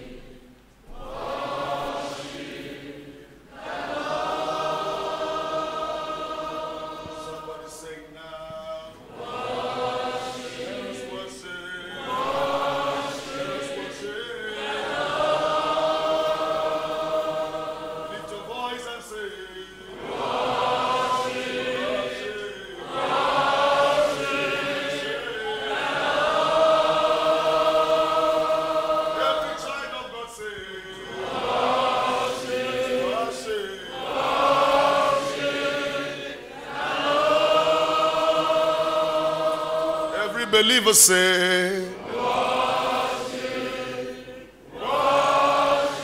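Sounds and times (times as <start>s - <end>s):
congregation singing: 0.0s - 46.0s.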